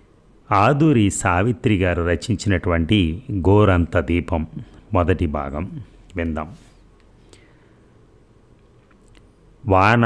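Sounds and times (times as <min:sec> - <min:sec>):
faint recording hiss: 0:00.0 - 0:10.0.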